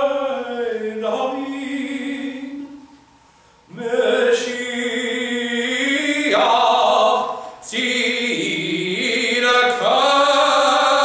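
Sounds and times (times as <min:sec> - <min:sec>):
man singing: 0:00.0 - 0:03.0, 0:03.7 - 0:11.0.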